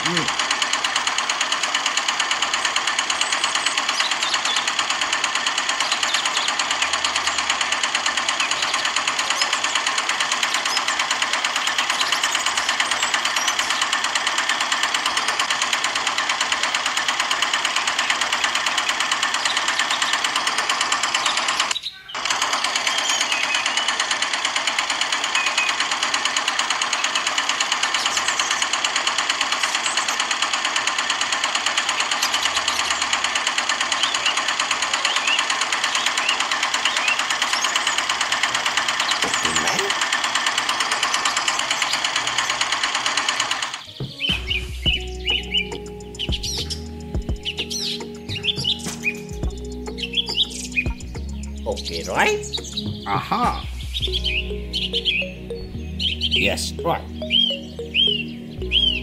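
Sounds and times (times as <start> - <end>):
small motor buzzing: 0.0 - 53.0.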